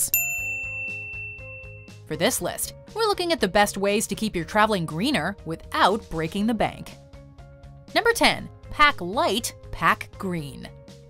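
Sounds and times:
bell-like ding: 0.0 - 2.0.

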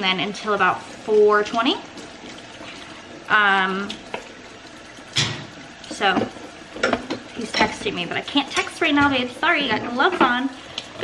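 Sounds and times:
tap water running into sink: 0.0 - 11.0.

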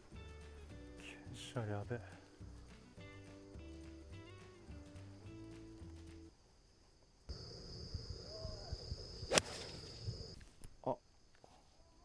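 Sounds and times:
low wind rumble: 7.3 - 10.4
golf club striking ball: 9.3 - 9.8.

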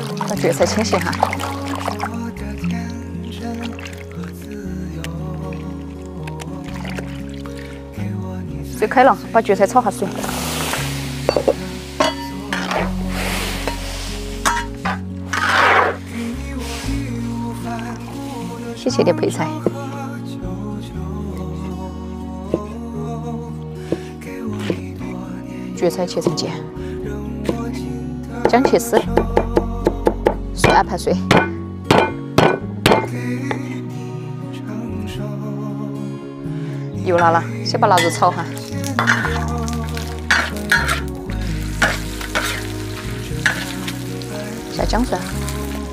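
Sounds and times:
background music: 0.0 - 45.9
boiling water hissing: 10.0 - 12.3, 12.9 - 14.6
metal ladle clinking against wok: 11.3 - 12.8, 14.4 - 15.0, 37.2 - 38.4, 39.0 - 39.5, 40.3 - 41.1.

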